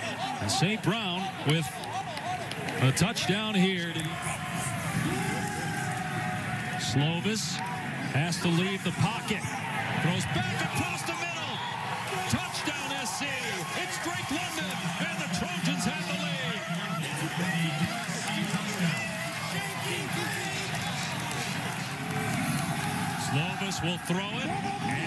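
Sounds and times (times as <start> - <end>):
overlapping voices: 0.0 - 25.0.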